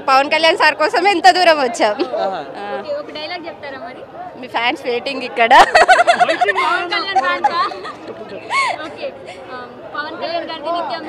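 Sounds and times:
background chatter: 0:00.0 - 0:11.0
people talking: 0:00.0 - 0:11.0.

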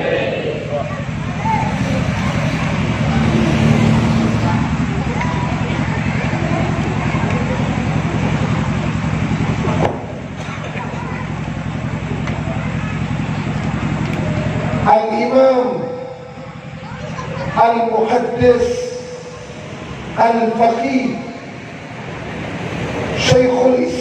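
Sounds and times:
low engine-like rumble: 0:00.0 - 0:24.0.

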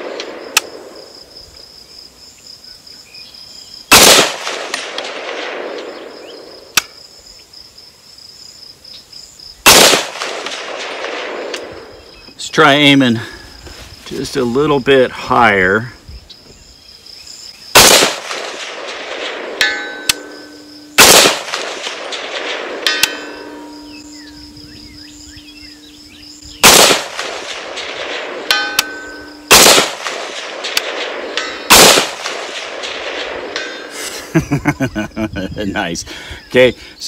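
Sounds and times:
rifle shots with echo: 0:03.9 - 0:06.7, 0:09.6 - 0:12.0, 0:17.7 - 0:23.8, 0:26.6 - 0:33.9
faint ring of bullet hitting steel: 0:19.6 - 0:20.6.

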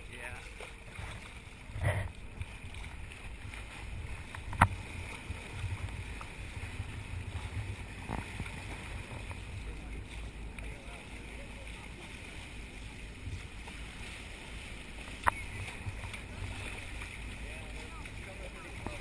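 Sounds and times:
water rushing along boat bow: 0:00.0 - 0:19.0
wind on microphone: 0:00.9 - 0:10.6.

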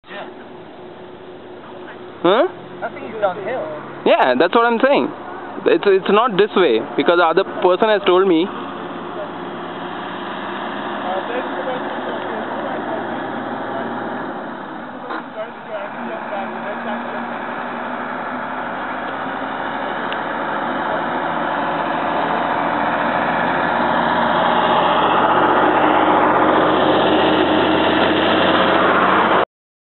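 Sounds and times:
road and wind noise: 0:00.0 - 0:29.4
vehicle engine running: 0:00.2 - 0:29.4.

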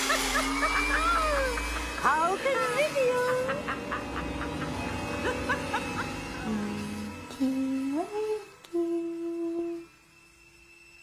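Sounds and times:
person humming: 0:06.4 - 0:09.9.

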